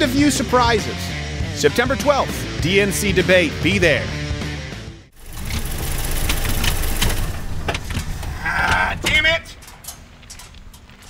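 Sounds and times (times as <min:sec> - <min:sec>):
car engine rumbling: 0:05.2 - 0:11.0
sharp engine knocks: 0:05.3 - 0:09.2.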